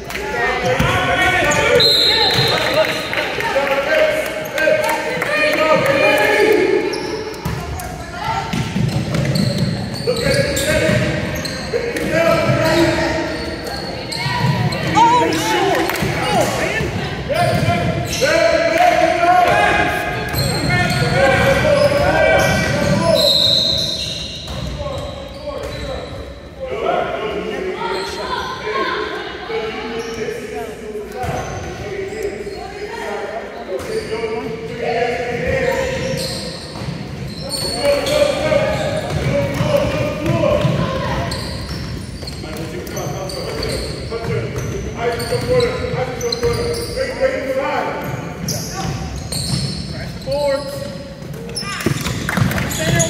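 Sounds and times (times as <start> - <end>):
players and spectators calling out: 0.0 - 53.0
basketballs bouncing on hardwood floor: 7.4 - 9.9, 38.8 - 44.8.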